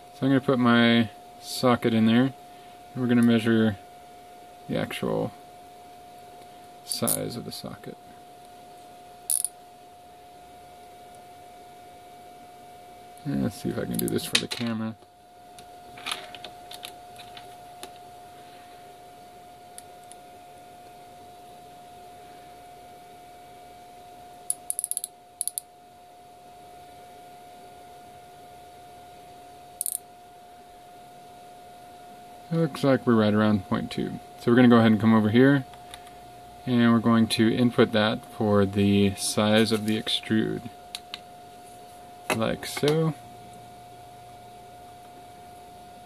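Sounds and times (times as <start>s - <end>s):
faint electrical whine: 0.0s - 46.0s
metallic clicking: 24.5s - 25.6s, 29.8s - 30.0s.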